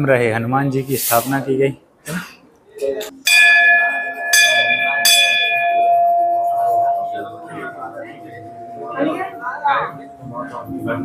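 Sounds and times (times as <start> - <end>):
brass bell ringing: 3.2 - 11.0.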